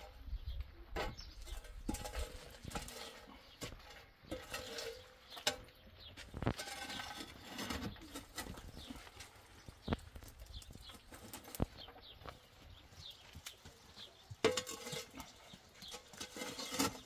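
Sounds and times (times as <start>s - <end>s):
metal shovel scraping stone: 1.0s - 10.0s, 14.4s - 17.0s.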